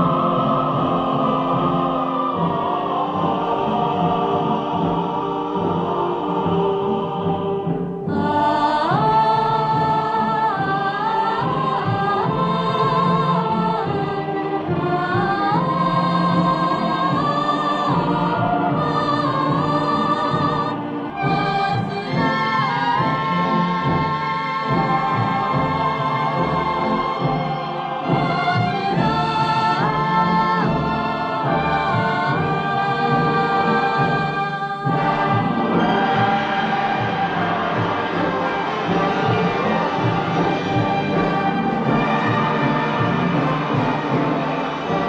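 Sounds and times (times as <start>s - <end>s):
choir singing held notes: 0.0s - 45.0s
orchestra playing: 0.0s - 45.0s.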